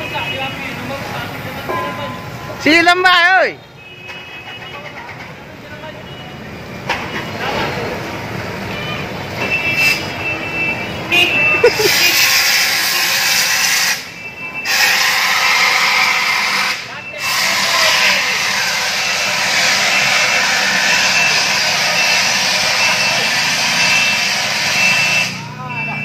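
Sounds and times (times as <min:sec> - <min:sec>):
voices: 0:00.0 - 0:03.6, 0:16.6 - 0:26.0
street traffic: 0:00.0 - 0:26.0
fire extinguisher hissing: 0:11.7 - 0:25.4.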